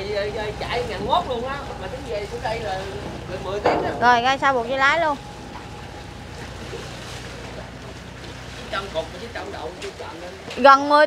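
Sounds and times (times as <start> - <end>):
boat engine humming: 0.0 - 11.0.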